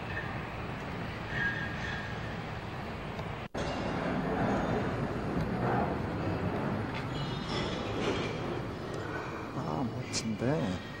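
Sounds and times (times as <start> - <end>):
steady rumbling: 0.0 - 10.1.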